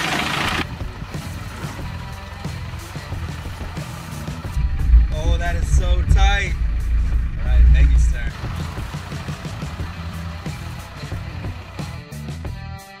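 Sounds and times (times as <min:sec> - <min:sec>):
engine rumbling inside cab: 0:00.0 - 0:12.2
music: 0:00.5 - 0:13.0.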